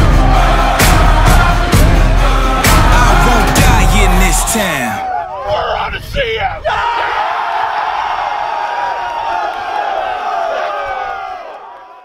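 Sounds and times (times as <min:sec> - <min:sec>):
group shouting and cheering: 0:00.0 - 0:12.0.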